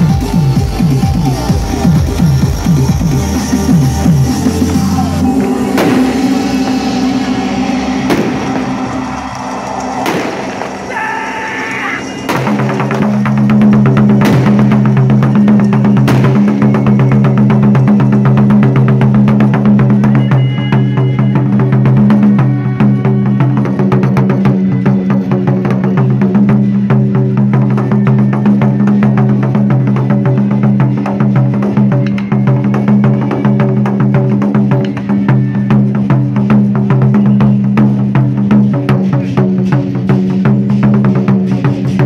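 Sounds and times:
amplified backing music: 0:00.0 - 0:10.9
low bass drone: 0:00.0 - 0:42.0
big drum strikes: 0:04.7 - 0:10.9, 0:12.2 - 0:20.2.

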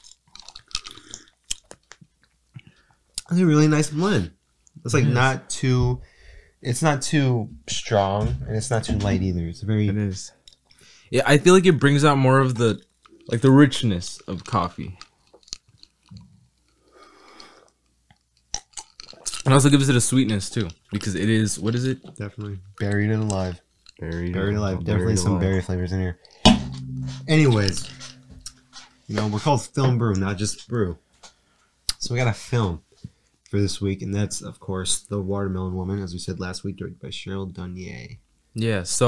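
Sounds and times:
soft breath: 0:06.0 - 0:06.6
wet mouth clicks: 0:18.1 - 0:19.4.

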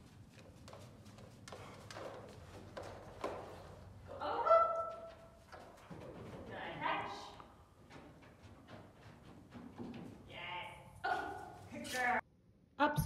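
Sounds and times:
dog paws thumping: 0:00.0 - 0:10.3
woman calling out command: 0:04.1 - 0:05.0.

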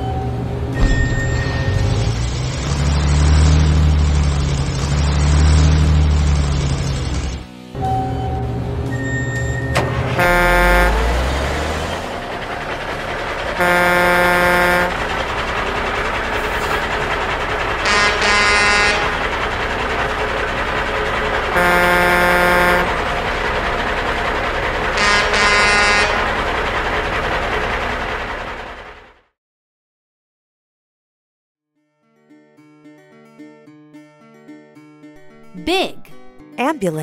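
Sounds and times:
engine running: 0:00.0 - 0:29.2
truck horn blasts: 0:09.8 - 0:12.2, 0:13.4 - 0:15.3, 0:17.8 - 0:19.2, 0:21.4 - 0:23.2, 0:24.9 - 0:26.4.

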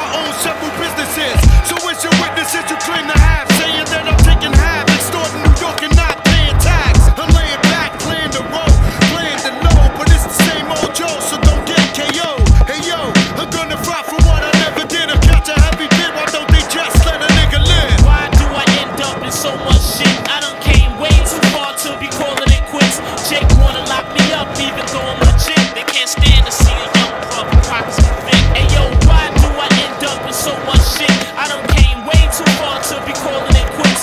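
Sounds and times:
hip-hop beat: 0:00.0 - 0:34.0
skateboard clacks: 0:00.0 - 0:34.0
skateboard wheels rolling on concrete: 0:00.0 - 0:34.0.

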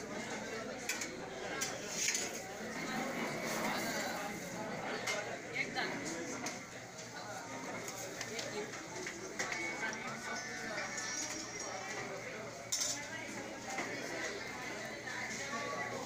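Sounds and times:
crowd talking in a hall: 0:00.0 - 0:16.0
spoons clinking on steel plates: 0:12.7 - 0:13.1.

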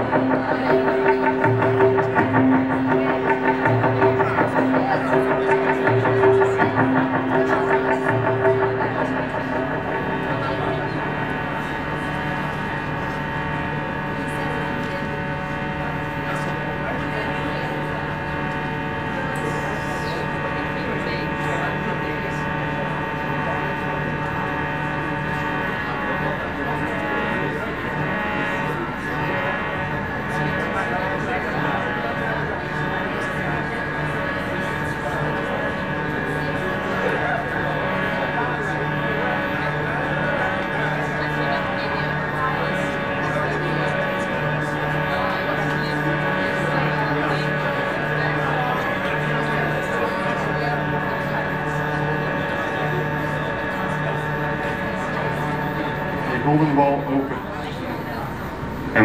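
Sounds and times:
looped low notes and tones: 0:00.0 - 0:57.5
layered drone of held tones: 0:00.0 - 0:59.0.

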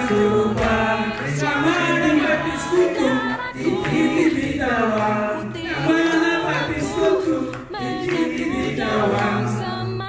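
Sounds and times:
voices singing together: 0:00.0 - 0:10.0.

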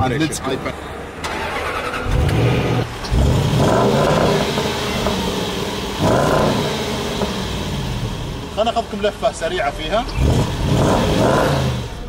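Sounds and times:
car engine starting and revving: 0:01.2 - 0:12.0.

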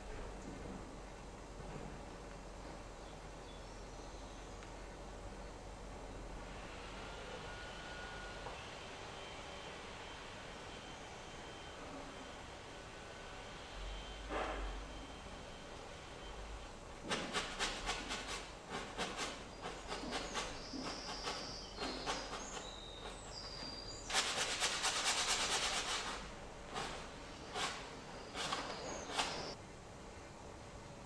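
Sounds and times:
paintbrush scrubbing canvas: 0:24.1 - 0:29.6.

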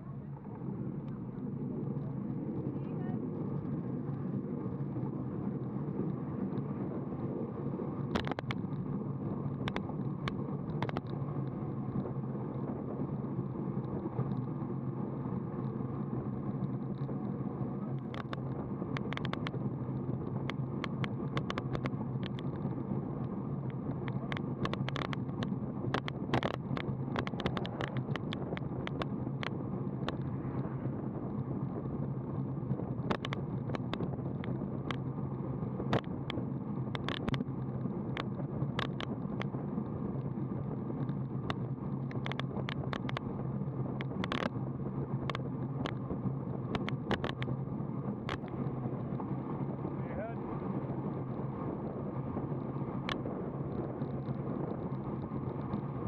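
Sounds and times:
low hum: 0:00.0 - 0:56.0
rolling road noise: 0:00.0 - 0:56.0
wind noise on microphone: 0:00.0 - 0:56.0
sharp clicks and ticks: 0:08.0 - 0:08.9, 0:09.5 - 0:12.1, 0:17.9 - 0:31.9, 0:32.7 - 0:35.2, 0:35.8 - 0:44.6, 0:45.2 - 0:49.2, 0:53.0 - 0:56.0.

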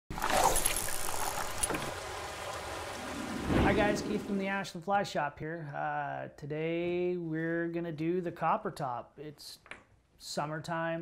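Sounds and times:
man speaking: 0:03.6 - 0:09.6, 0:10.2 - 0:11.0.

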